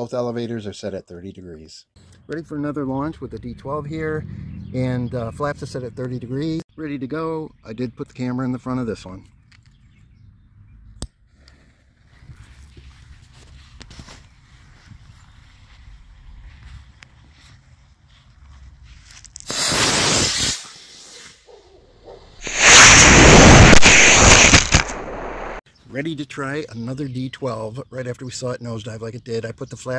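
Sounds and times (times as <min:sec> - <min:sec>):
rocket motor rushing hiss: 0:19.5 - 0:21.4, 0:22.4 - 0:25.6
lit fuse sputtering: 0:22.4 - 0:25.6.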